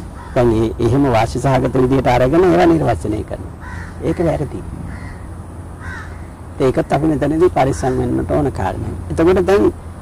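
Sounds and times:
crow cawing: 0.0 - 0.6, 3.6 - 6.4
man speaking: 0.4 - 4.8, 6.6 - 9.8.

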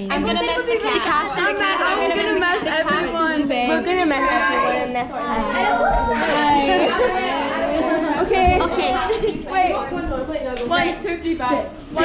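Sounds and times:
girls chattering: 0.0 - 12.0.

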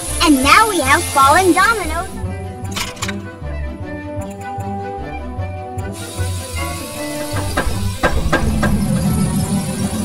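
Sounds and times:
cheerful background music: 0.0 - 10.0.

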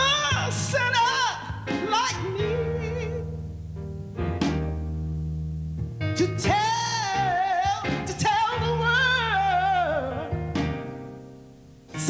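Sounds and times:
low accompaniment: 0.0 - 12.0.

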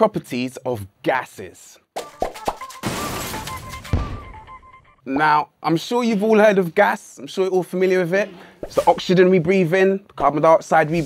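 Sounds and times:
jingle music: 2.4 - 5.0.

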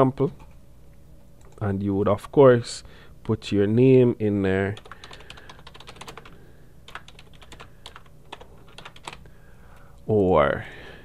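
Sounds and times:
computer keyboard typing: 4.7 - 9.2.

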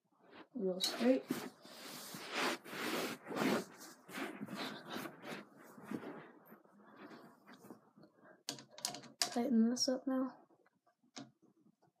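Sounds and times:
rustling and handling noise: 0.2 - 9.4.

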